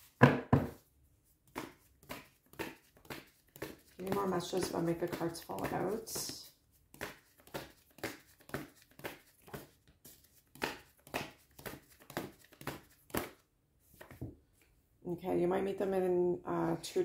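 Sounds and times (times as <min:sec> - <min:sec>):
cards being shuffled: 0:01.5 - 0:14.2.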